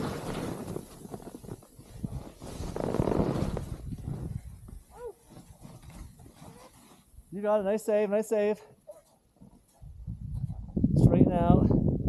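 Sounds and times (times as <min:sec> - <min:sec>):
wind rumble on microphone: 0:00.0 - 0:04.9, 0:09.8 - 0:12.0
ski edges scraping on snow: 0:00.0 - 0:07.3.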